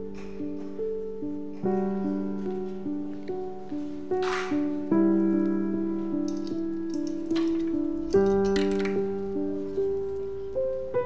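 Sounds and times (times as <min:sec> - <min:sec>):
slow piano chords: 0:00.0 - 0:11.0.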